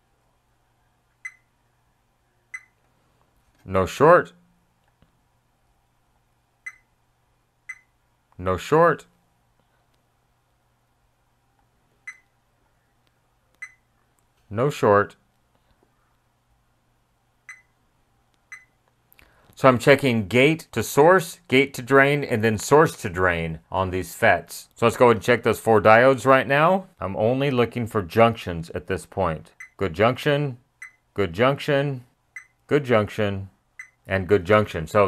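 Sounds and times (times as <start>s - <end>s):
multimeter beep: 1.2s - 1.5s, 2.5s - 2.8s, 6.6s - 6.9s, 7.7s - 8.0s, 12.1s - 12.3s, 13.6s - 13.8s, 17.5s - 17.8s, 18.5s - 18.8s, 29.6s - 29.8s, 30.8s - 31.0s, 32.4s - 32.6s, 33.8s - 34.0s.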